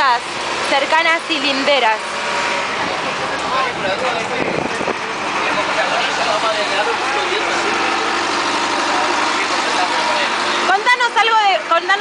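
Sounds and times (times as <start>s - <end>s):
bus engine running: 0.0s - 12.0s.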